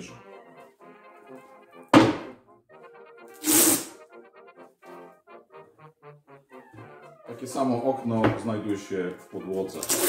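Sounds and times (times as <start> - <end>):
background music: 0.0 - 10.0
wooden drawer thunk on table: 2.0 - 2.3, 8.2 - 8.5.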